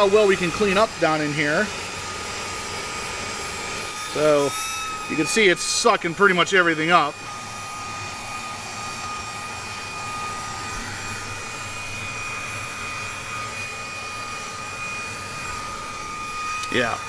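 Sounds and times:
handheld vacuum running: 0.0s - 17.0s.

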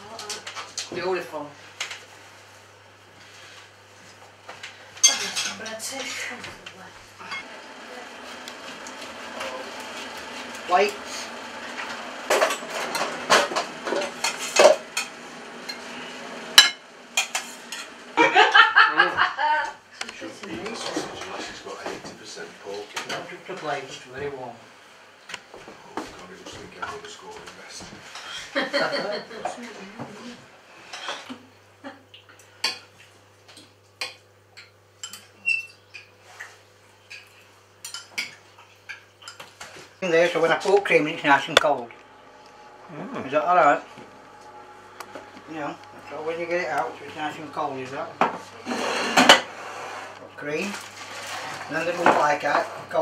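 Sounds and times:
cutlery clinking on plates: 5.0s - 5.6s
utensils clinking on plates: 5.0s - 6.2s, 12.3s - 15.9s, 16.6s - 18.0s, 34.0s - 36.1s, 37.1s - 39.8s, 48.2s - 49.6s
people laughing: 18.2s - 19.8s, 28.4s - 29.6s
indistinct voices: 40.7s - 49.2s.

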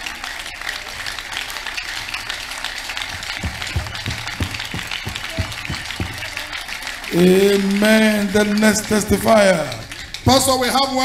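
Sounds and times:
crowd applauding: 0.0s - 11.0s
steady low drum beat: 3.2s - 6.4s.

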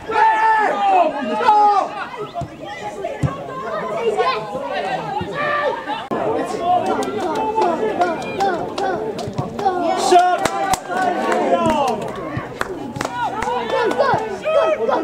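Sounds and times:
voices calling out and chattering: 0.0s - 15.0s.

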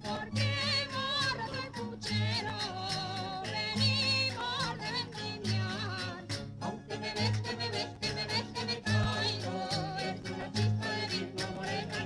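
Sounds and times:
folk instrumental accompaniment: 0.0s - 12.0s.

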